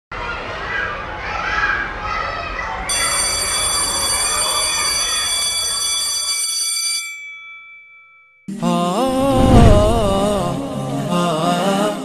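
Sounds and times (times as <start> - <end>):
crowd of children: 0.1 - 5.6
high alarm-like ringing tone: 2.9 - 8.5.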